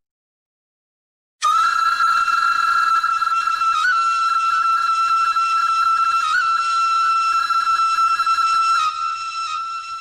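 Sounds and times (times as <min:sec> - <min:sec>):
flute holding long note: 0:01.4 - 0:10.0.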